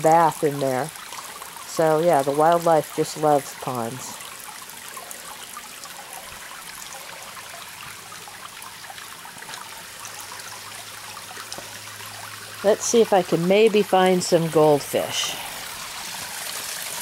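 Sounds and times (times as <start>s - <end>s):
fountain water trickling: 0.0s - 17.0s.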